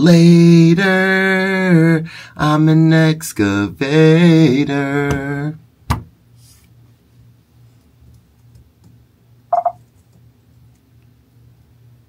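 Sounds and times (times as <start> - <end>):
low room hum: 0.0 - 12.0
two-pulse beep: 9.5 - 9.8.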